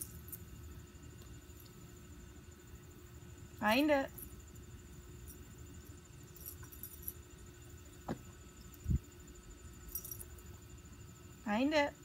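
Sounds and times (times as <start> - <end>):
steady low rumble: 0.0 - 11.4
faint high-pitched whine: 0.0 - 12.0
dull low thump: 8.0 - 9.0.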